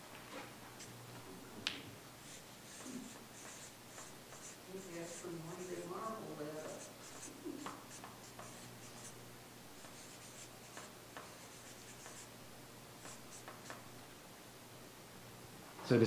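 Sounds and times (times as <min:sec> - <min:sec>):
marker pen scratching on paper: 0:02.2 - 0:12.4, 0:13.0 - 0:13.9.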